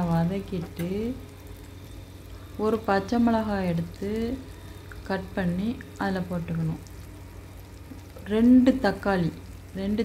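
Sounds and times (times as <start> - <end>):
woman speaking: 0.0 - 1.2, 2.6 - 6.9, 8.2 - 10.0
shallots sizzling in oil: 0.0 - 10.0
steady low hum: 0.0 - 10.0.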